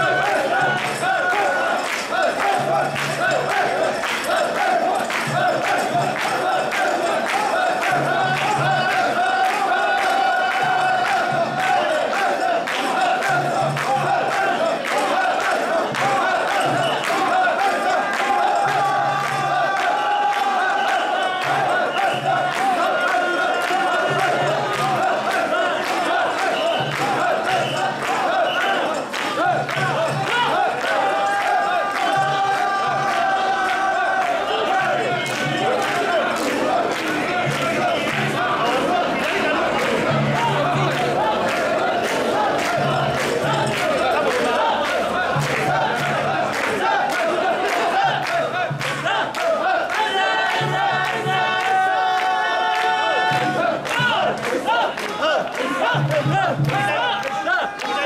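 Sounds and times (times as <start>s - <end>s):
crowd chanting in rhythm: 0.0s - 58.0s.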